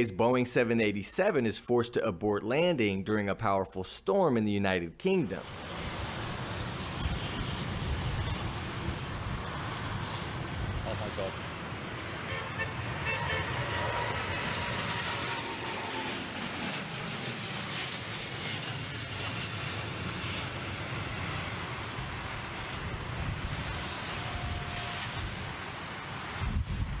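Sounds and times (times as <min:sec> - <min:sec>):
jet engines roaring: 0:05.2 - 0:27.0
wind buffeting microphone: 0:19.4 - 0:27.0.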